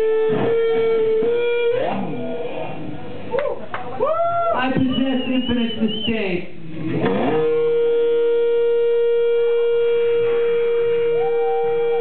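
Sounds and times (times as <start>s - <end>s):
sustained electric guitar tone: 0.0s - 3.4s, 6.7s - 12.0s.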